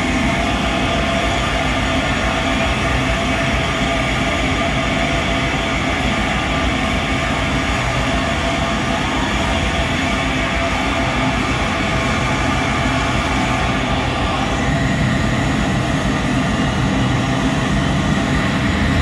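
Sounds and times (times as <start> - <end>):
distorted electric guitar drone: 13.2 - 19.0.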